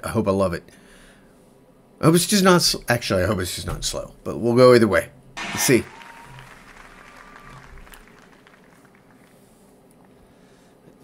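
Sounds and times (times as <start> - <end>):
faint applause and crowd noise: 5.4 - 9.8.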